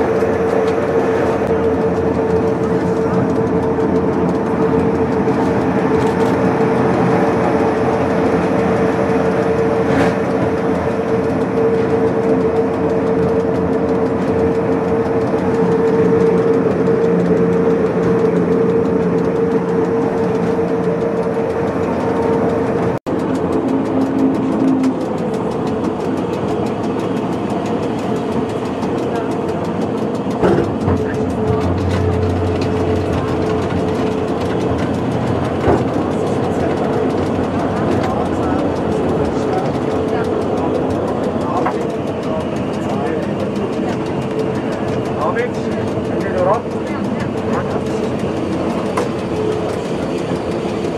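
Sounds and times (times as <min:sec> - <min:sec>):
electric motor and gearing whine: 0:00.0 - 0:50.9
running gear rumble: 0:00.0 - 0:50.9.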